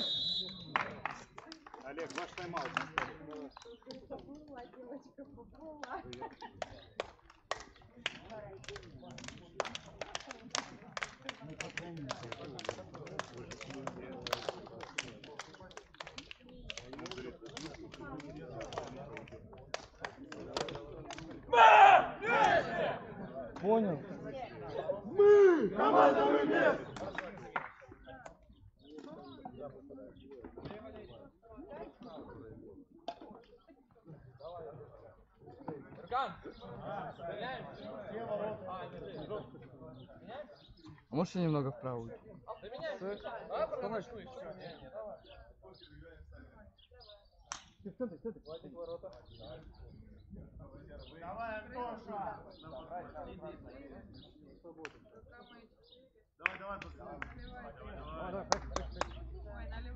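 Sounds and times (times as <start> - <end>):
men talking: 1.8 - 3.5, 11.3 - 15.7, 16.7 - 32.6, 34.1 - 46.8, 47.8 - 55.6, 56.4 - 59.9
players calling out: 21.3 - 23.2, 25.0 - 27.2.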